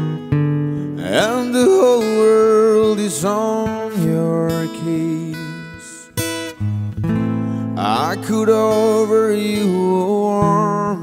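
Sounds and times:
acoustic guitar strumming: 0.0s - 11.0s
person singing: 0.9s - 6.2s, 7.6s - 11.0s.

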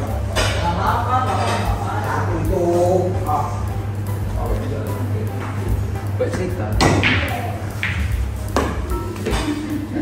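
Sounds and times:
steady low hum: 0.0s - 10.0s
pool balls clicking: 5.3s - 9.9s.

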